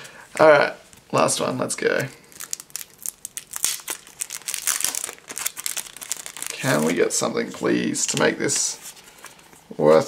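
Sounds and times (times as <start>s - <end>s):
card pack crinkling: 2.2s - 7.2s.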